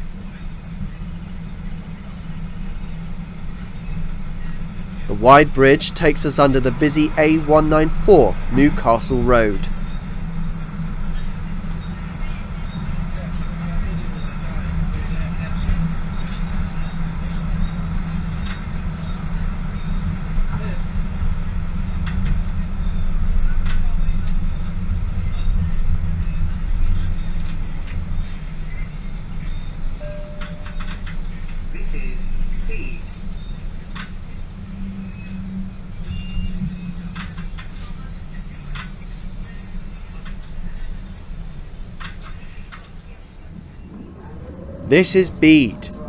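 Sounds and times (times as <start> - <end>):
train rumbling along track: 43.2 - 46.0.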